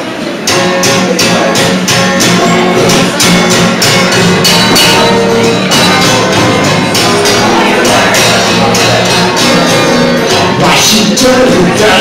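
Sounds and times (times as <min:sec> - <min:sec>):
live band with strummed guitar: 0:00.0 - 0:12.0.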